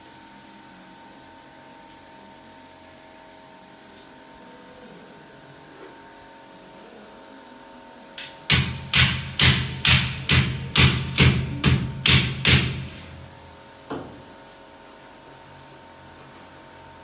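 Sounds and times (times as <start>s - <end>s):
hammer striking metal plate: 8.5s - 13.3s.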